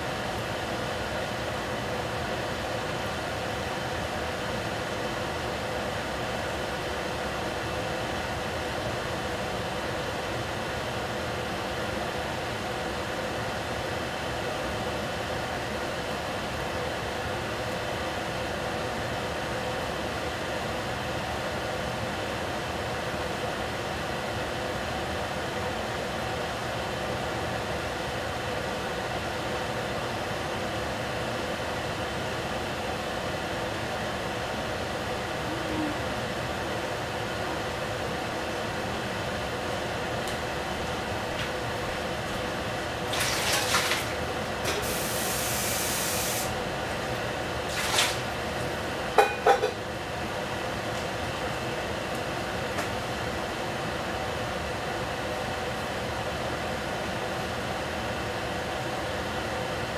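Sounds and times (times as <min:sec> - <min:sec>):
pot hissing on stovetop: 0:44.7 - 0:46.6.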